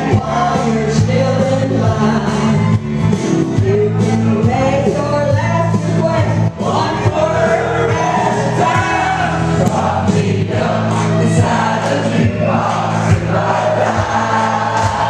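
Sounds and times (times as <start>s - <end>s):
man singing into microphone: 0.0s - 2.8s, 3.5s - 9.3s
woman singing into microphone: 0.0s - 8.9s
country backing track: 0.0s - 15.0s.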